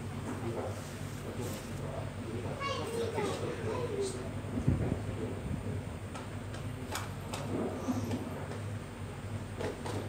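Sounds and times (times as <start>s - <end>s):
child's high voice: 2.6s - 4.2s.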